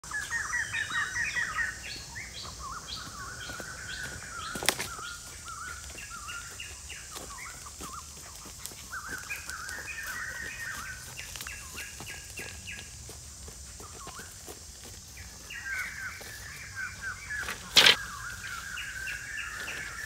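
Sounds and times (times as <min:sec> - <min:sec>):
birds chirping and warbling: 0:00.0 - 0:20.0.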